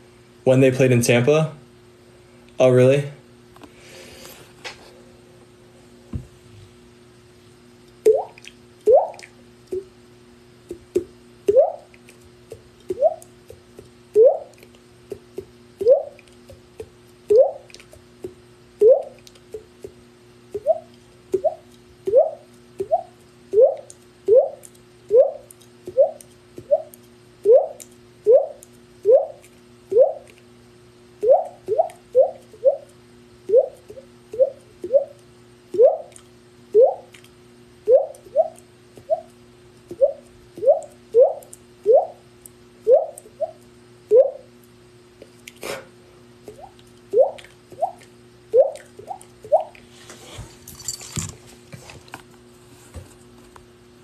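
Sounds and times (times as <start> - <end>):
man making water-drop mouth pops: 8.0 - 10.0, 10.6 - 23.1, 46.5 - 49.8.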